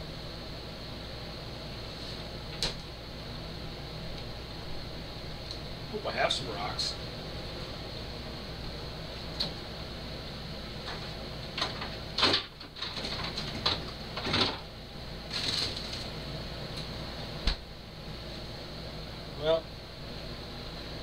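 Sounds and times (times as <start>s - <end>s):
steady background hum: 0.0s - 21.0s.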